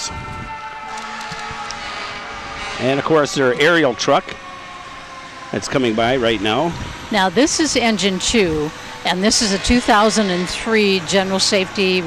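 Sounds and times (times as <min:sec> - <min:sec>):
fire engine rumble and hum: 0:00.0 - 0:12.0.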